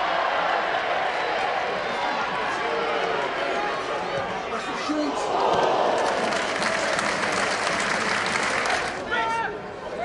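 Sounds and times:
stadium crowd cheering and applauding: 0.0 - 3.8, 5.2 - 9.5.

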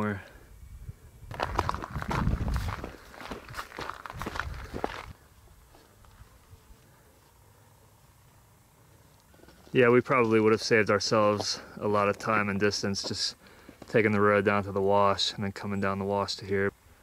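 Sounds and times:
footsteps crunching on gravel: 1.3 - 6.3.

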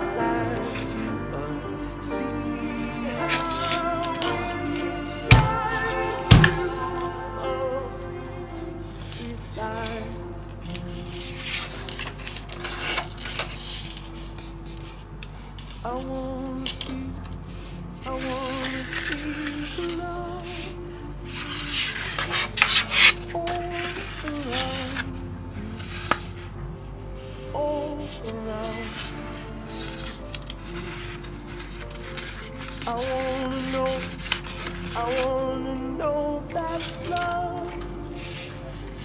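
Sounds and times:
background music: 0.0 - 39.0
paper rustling and crinkling: 1.9 - 26.6, 27.2 - 39.0.

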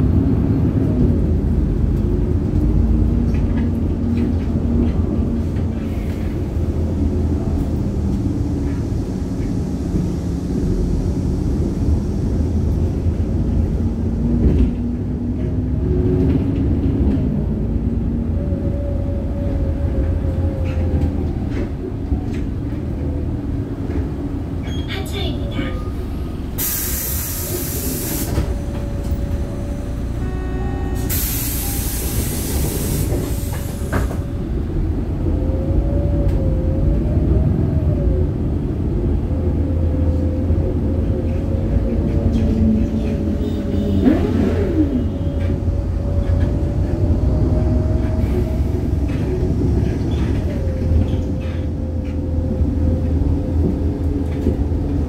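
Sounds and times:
bus engine and road rumble: 0.0 - 55.0
compressed air hiss: 26.6 - 28.5, 31.0 - 34.0.

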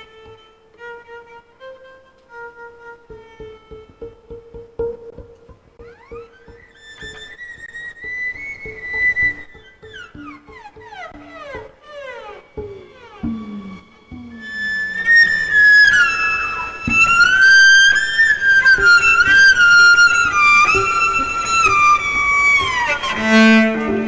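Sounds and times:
bowed cello melody: 0.0 - 24.0
other instruments playing: 0.0 - 24.0.

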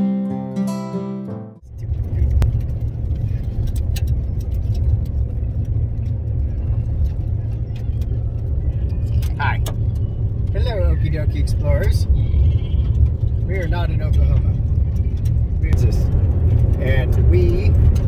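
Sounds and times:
car cabin road rumble: 1.6 - 18.0.

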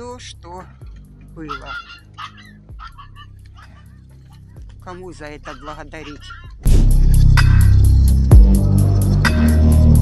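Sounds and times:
background music: 0.0 - 10.0
dog barking: 1.5 - 4.0, 5.4 - 6.6.

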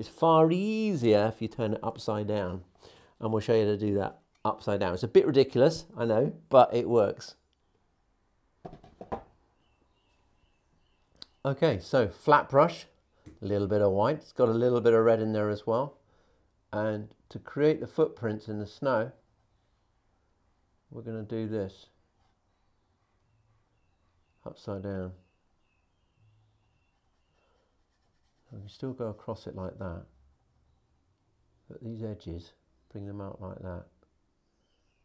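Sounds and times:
board knocking against wooden easel: 8.6 - 9.3
faint high chirps: 25.2 - 27.7.

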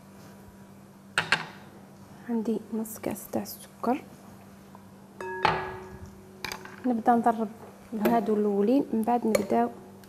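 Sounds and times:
glass clinking on glass bowl: 5.2 - 6.8.

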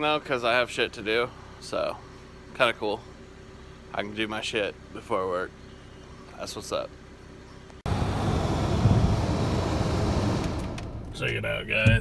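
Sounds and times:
car tyre and road noise: 0.0 - 12.0.

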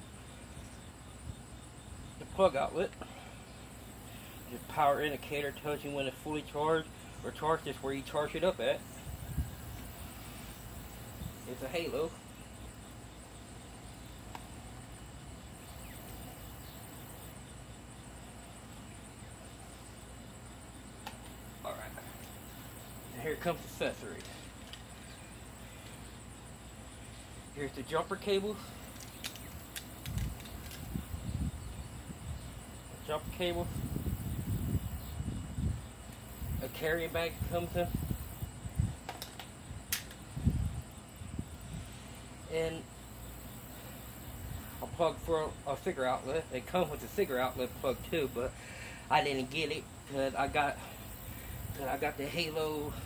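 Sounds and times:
insects chirping: 0.0 - 53.0
light handling clicks: 28.9 - 30.9, 39.0 - 40.2
sharp click: 39.0 - 40.2.

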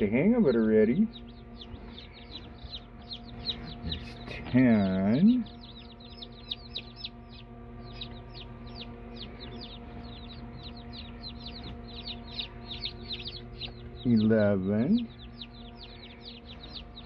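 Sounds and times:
chicks peeping: 0.0 - 17.0
low hum: 0.0 - 17.0.

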